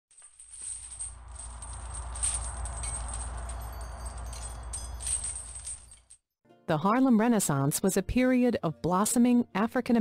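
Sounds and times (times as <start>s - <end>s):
jingling metallic shimmer: 0.4s - 6.2s
steady low rumble: 0.9s - 5.8s.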